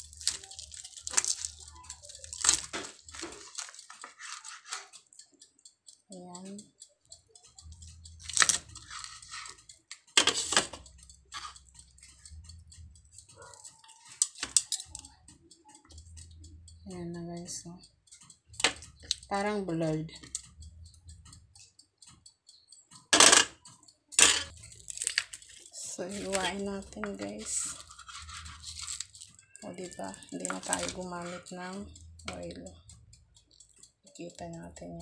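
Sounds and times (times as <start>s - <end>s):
knife and fork cutting chicken: 0.1s - 5.0s, 8.2s - 12.1s, 13.3s - 15.1s, 24.3s - 32.4s.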